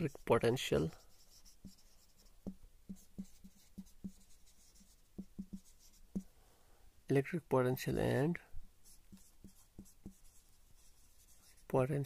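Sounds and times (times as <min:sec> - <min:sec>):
marker pen writing on whiteboard: 0:00.0 - 0:06.3, 0:08.8 - 0:11.8.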